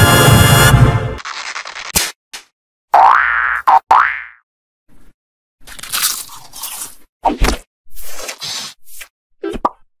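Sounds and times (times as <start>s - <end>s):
crunching sound effects: 1.2s - 2.5s.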